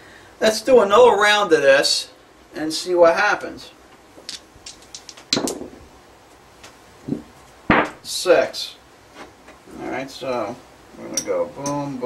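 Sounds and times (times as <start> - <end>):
dice clattering across table: 4.2 - 5.8
dice clicking in hand: 4.3 - 5.6.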